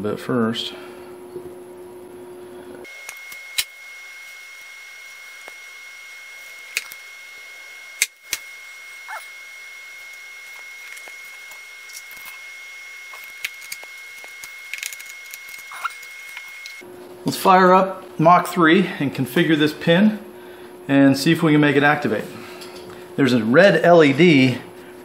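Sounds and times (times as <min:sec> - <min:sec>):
wire cutters clicking and snipping: 0:03.0 - 0:03.8, 0:06.7 - 0:07.0, 0:08.0 - 0:08.5, 0:10.4 - 0:12.5, 0:13.1 - 0:16.8.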